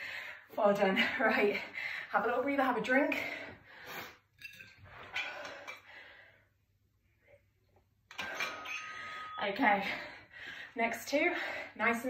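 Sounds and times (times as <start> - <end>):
woman breathing hard: 0.0 - 0.5, 5.1 - 6.6.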